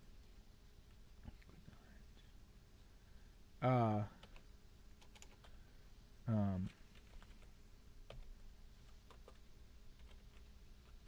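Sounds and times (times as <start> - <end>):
computer keyboard clicks: 4.2 - 5.6, 6.9 - 7.4, 9.0 - 9.4, 10.0 - 11.0.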